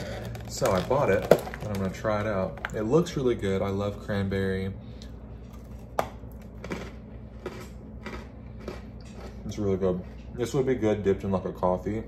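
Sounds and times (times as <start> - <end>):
biscotti crunching: 0.0 - 4.3, 5.0 - 11.0.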